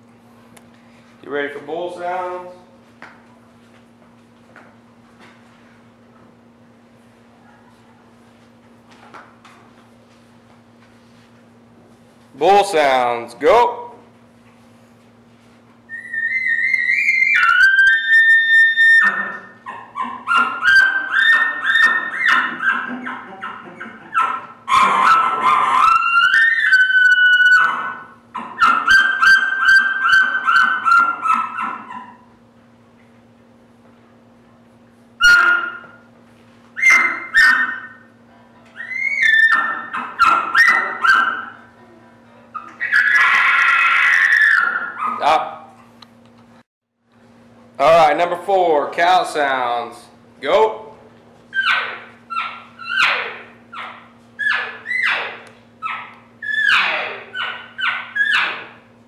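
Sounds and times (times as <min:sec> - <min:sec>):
imitated elk bugling call: 0:15.9 - 0:32.2, 0:35.2 - 0:36.0, 0:36.8 - 0:38.1, 0:42.6 - 0:45.4
pulsing chuckles: 0:22.9 - 0:24.2.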